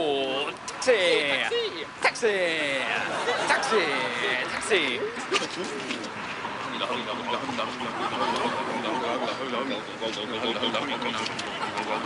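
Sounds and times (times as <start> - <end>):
voices murmuring: 0.0 - 12.0.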